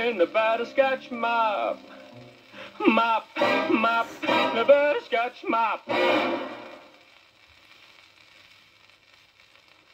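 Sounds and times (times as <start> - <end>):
record surface hiss and crackle: 0.0 - 9.9.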